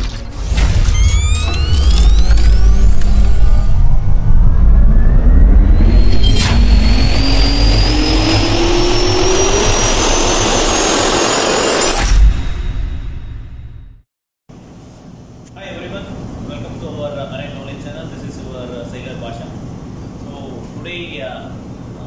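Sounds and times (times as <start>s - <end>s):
sharp hit: 0.0s - 14.0s
jet turbine spooling up: 0.5s - 12.3s.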